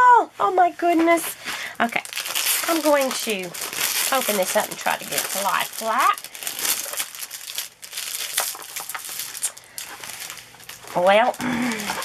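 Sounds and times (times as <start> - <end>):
plastic film crinkling: 0.9 - 12.0.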